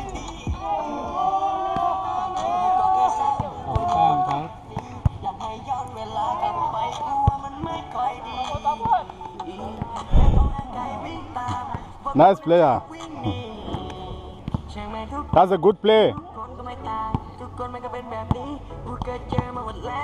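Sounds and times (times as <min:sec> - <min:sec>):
music: 0:00.0 - 0:20.0
loud low thump: 0:10.1 - 0:10.8.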